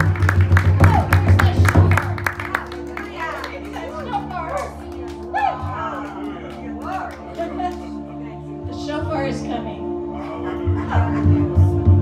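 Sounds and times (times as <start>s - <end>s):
electric keyboard sustained chord: 1.4s - 12.0s
voices talking and exclaiming: 2.8s - 11.8s.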